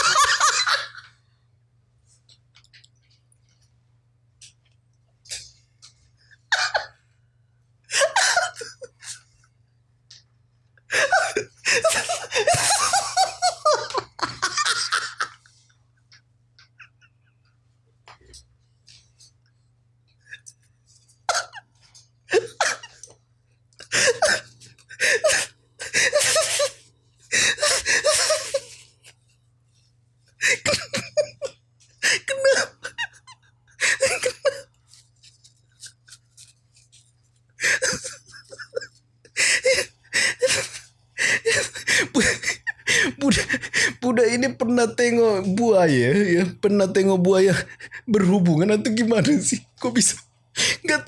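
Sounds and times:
man laughing: 0.0s - 1.0s, 8.0s - 9.2s, 10.9s - 15.5s, 22.3s - 23.1s, 23.8s - 26.8s, 27.4s - 28.8s, 30.4s - 34.7s, 37.6s - 44.0s
man's breathy laughter: 23.8s - 28.8s, 37.6s - 44.0s.

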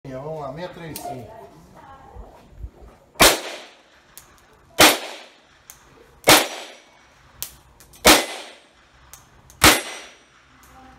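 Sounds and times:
pistol shots: 3.2s - 3.9s, 4.8s - 5.4s, 6.2s - 6.9s, 8.0s - 8.8s, 9.6s - 10.3s.

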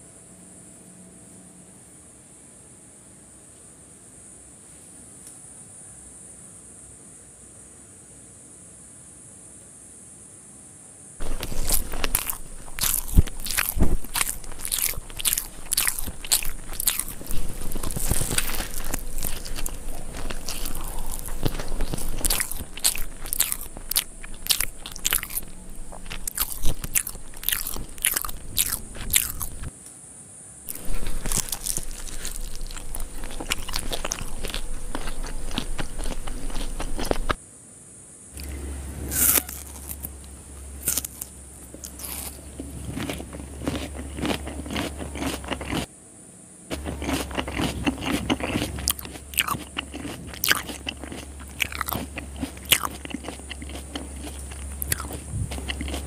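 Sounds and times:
crunching and chewing: 11.2s - 29.7s, 30.7s - 37.4s, 38.4s - 45.9s, 46.7s - 56.0s
faint low hum: 11.2s - 56.0s.

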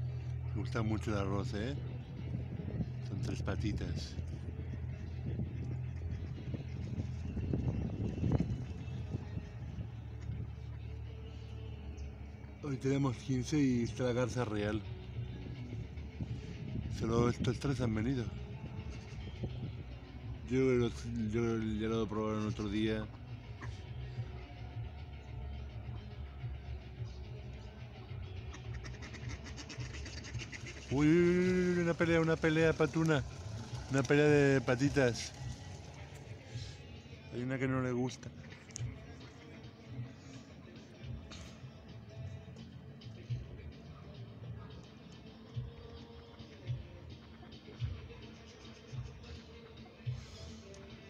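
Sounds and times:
low rumble of motor traffic: 0.0s - 51.0s
ducks splashing and dabbling: 28.4s - 34.6s.

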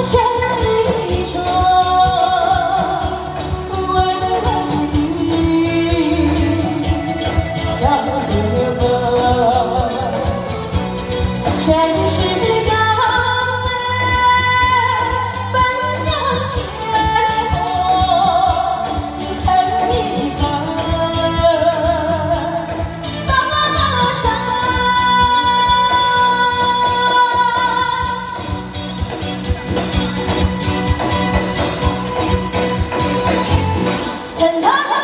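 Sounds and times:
band playing a steady beat: 0.0s - 34.7s
woman singing into microphone: 0.0s - 35.0s.

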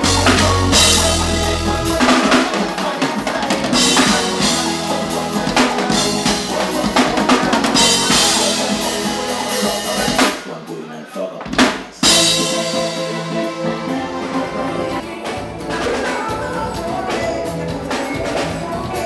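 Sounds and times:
drum kit hits: 0.0s - 10.4s, 11.5s - 16.4s
live band through pa: 0.0s - 19.0s.

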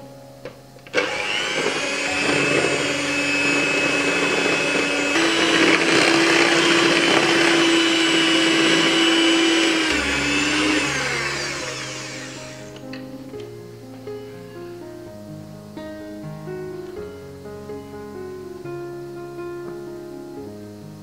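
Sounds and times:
electric hand mixer whining: 0.9s - 12.8s.

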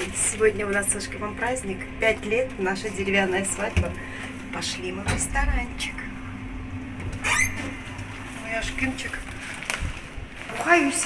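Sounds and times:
elevator hum and rumble: 0.0s - 11.0s.

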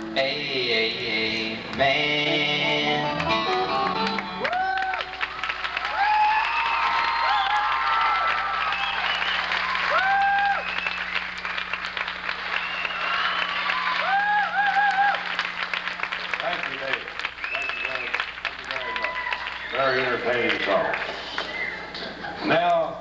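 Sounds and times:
audience applauding: 3.1s - 22.4s
high held whistles: 6.1s - 16.3s, 17.1s - 20.2s, 21.2s - 21.9s.

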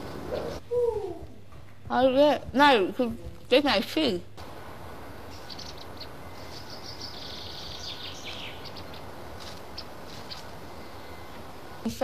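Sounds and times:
birds chirping: 0.0s - 0.8s, 4.4s - 12.0s
high warbling birdsong: 0.0s - 0.9s, 4.4s - 12.0s
steady background hiss: 0.0s - 12.0s.

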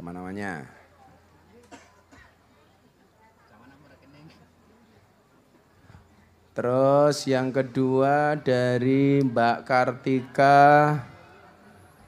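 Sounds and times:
low voices: 0.0s - 12.0s.

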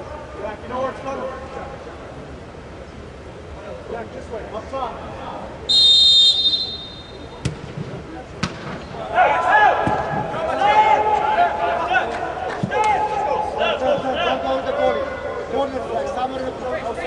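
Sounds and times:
ball kick thud: 7.4s - 8.9s
voices shouting: 9.1s - 15.5s.

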